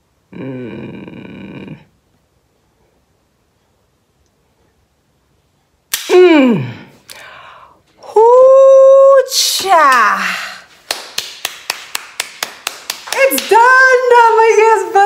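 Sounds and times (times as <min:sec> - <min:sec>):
rapid hand clapping: 0:10.8 - 0:13.9.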